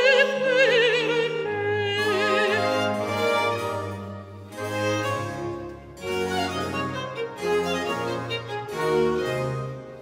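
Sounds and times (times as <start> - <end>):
bowed strings: 0.0 - 10.0.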